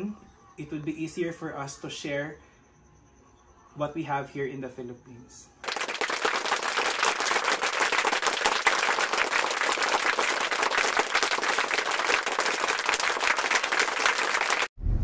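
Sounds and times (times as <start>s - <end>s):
crowd applauding: 5.6s - 14.7s.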